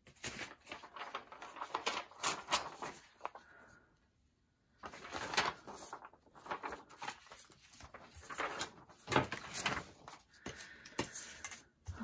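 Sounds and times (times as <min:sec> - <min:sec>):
paper rustling and sliding: 0:00.0 - 0:03.7, 0:04.7 - 0:11.7.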